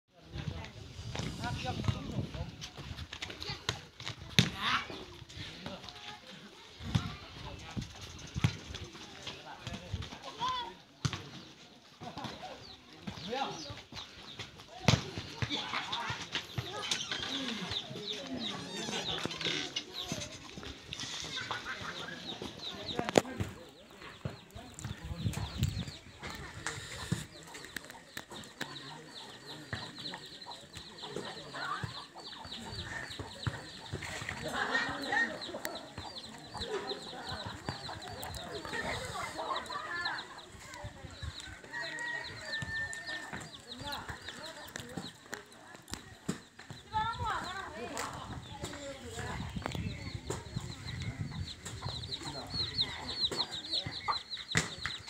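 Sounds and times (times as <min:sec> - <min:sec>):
faint voices: 0:00.1 - 0:55.0
small birds chirping: 0:00.3 - 0:55.0
chickens clucking: 0:15.2 - 0:55.0.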